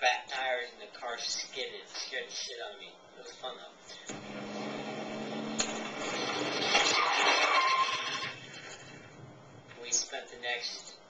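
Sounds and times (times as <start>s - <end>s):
car engine running: 4.1s - 6.9s
tires skidding: 4.1s - 9.1s.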